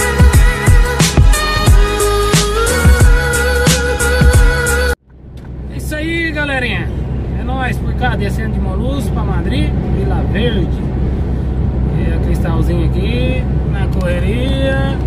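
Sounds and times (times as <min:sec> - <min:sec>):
lorry engine drone: 0:00.0 - 0:15.0
road noise: 0:00.0 - 0:15.0.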